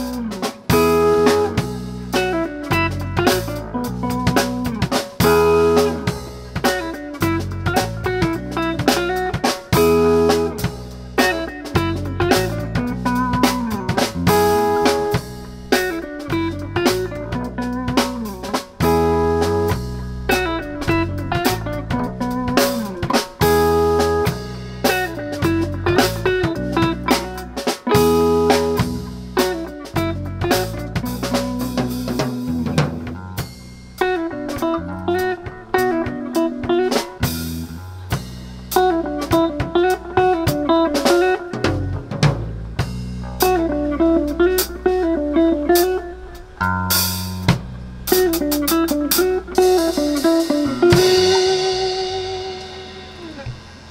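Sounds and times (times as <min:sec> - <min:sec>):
drum kit: 0:00.0 - 0:53.9
electric bass: 0:00.0 - 0:53.9
electric guitar riff: 0:00.0 - 0:53.9.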